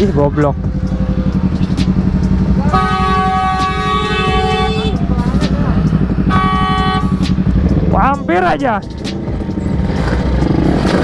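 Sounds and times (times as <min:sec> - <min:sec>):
two-stroke motorcycle engine running: 0:00.0 - 0:11.0
vehicle horn blaring: 0:02.5 - 0:05.3, 0:06.0 - 0:07.4.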